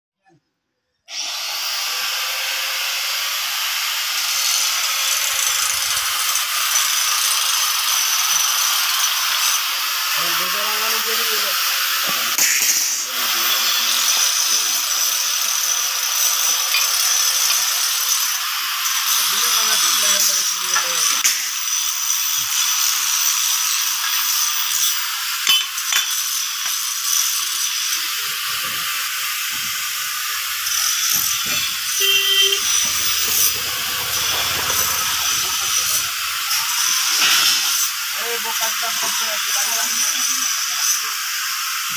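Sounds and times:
loud steady hissing: 0:02.8 - 0:41.9.

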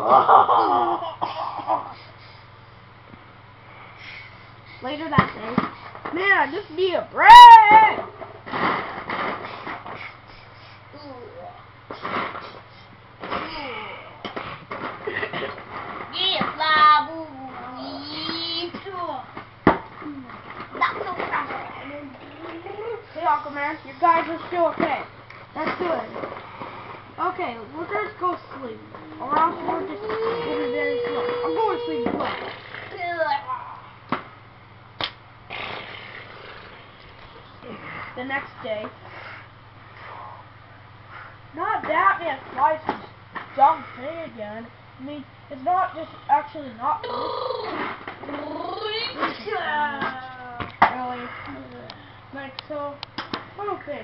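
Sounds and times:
child laughing: 0:00.0 - 0:02.0
child's pitched vocal noises: 0:16.7 - 0:18.8, 0:28.9 - 0:33.9, 0:47.0 - 0:51.7.

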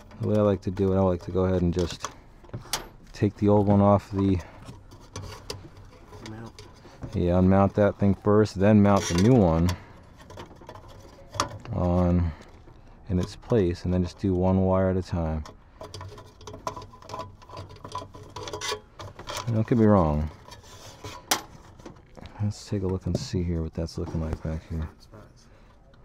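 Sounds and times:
handling noise of wires and screwdriver: 0:00.0 - 0:25.0
screwdriver clicks and scrapes: 0:15.4 - 0:19.8.

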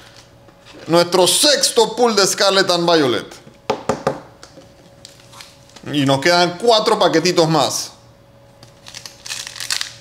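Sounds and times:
foil wrapper crinkling and tearing: 0:08.6 - 0:10.0.

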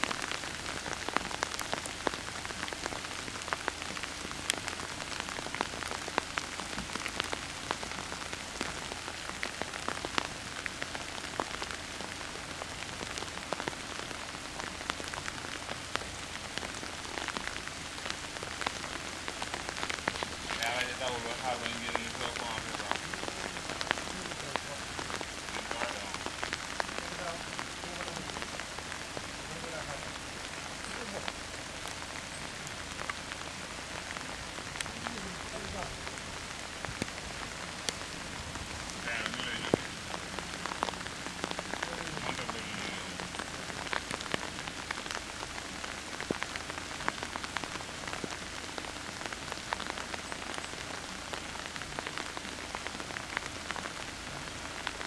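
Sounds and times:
raindrops ticking close: 0:00.0 - 0:55.0
steady rain hiss: 0:00.0 - 0:55.0.

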